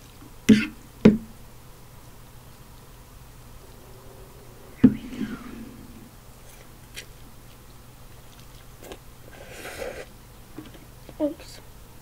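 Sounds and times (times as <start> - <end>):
slurping noodles: 9.3 - 10.1.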